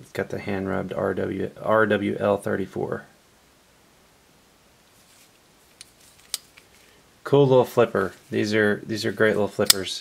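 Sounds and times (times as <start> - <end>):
knife blade clicks: 9.6 - 9.8.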